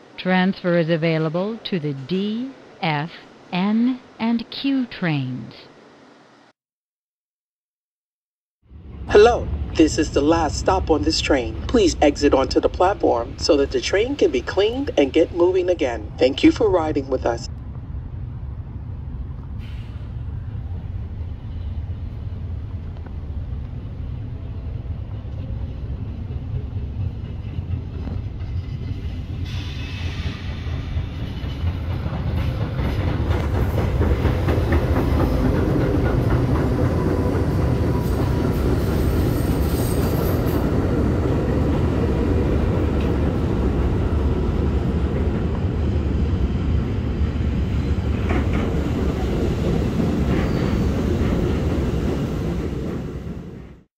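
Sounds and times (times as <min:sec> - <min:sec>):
train wheels rumbling and clacking: 0:22.6 - 0:53.9
high wheel squeal: 0:50.3 - 0:51.2.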